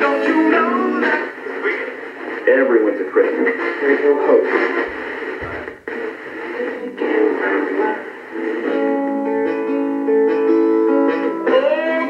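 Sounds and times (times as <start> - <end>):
radio tuning between stations: 0.0 - 9.4
radio music with held notes: 0.0 - 12.0.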